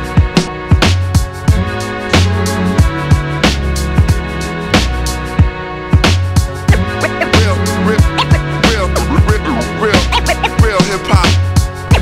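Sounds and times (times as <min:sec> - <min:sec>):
hip-hop instrumental beat: 0:00.0 - 0:12.0.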